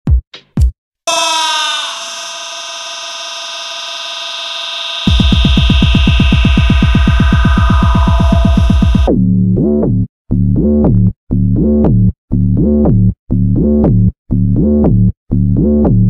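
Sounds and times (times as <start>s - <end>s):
held synthesizer chord: 1.1s - 9.1s
fast pulsing bass beat: 5.0s - 16.0s.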